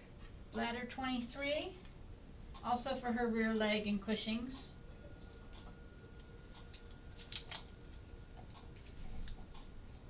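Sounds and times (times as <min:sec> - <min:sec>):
faint clicks of needles: 0:05.3 - 0:10.0.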